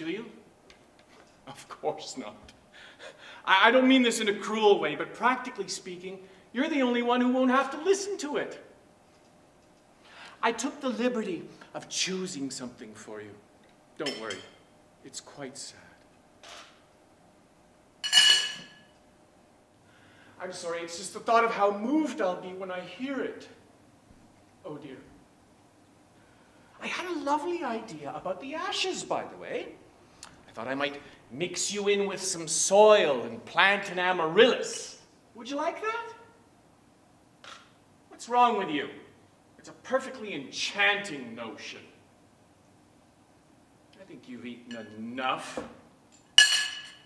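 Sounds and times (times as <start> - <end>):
faint breath: 10.0 - 10.4, 19.8 - 20.4.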